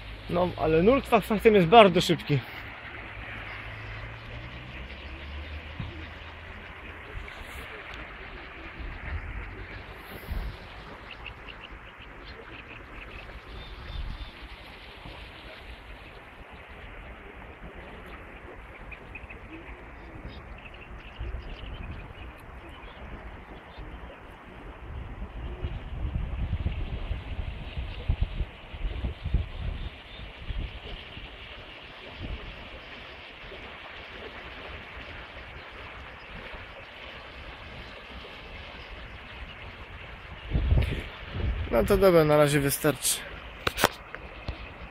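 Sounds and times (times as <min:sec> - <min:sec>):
river rushing in strong current: 0:00.0 - 0:44.9
wind buffeting microphone: 0:00.0 - 0:44.9.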